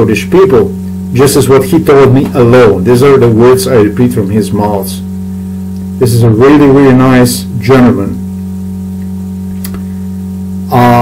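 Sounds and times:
electrical mains hum: 0.0s - 11.0s
faint click: 9.0s - 9.9s.

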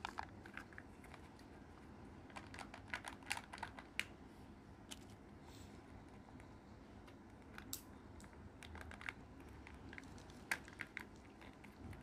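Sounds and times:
plastic clicks and crinkles: 0.0s - 1.5s, 2.2s - 4.1s, 7.0s - 12.0s.

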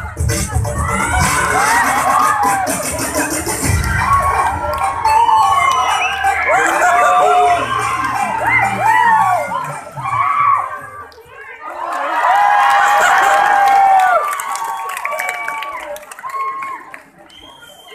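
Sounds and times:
loud music with heavy bass: 0.0s - 11.0s
crowd shouting and cheering: 0.0s - 17.9s.

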